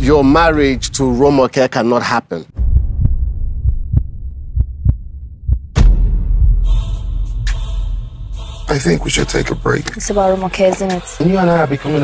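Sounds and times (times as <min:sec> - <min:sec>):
heartbeat-like double pulse: 0:02.6 - 0:08.6.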